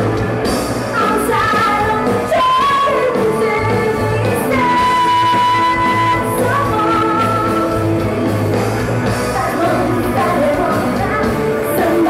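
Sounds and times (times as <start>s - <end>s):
rock band playing: 0.0s - 12.0s
woman singing: 0.9s - 8.0s, 9.1s - 12.0s.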